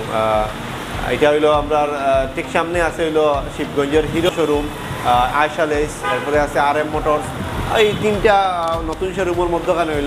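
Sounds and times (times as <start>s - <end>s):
man talking: 0.0s - 10.0s
street traffic rumble: 0.0s - 10.0s.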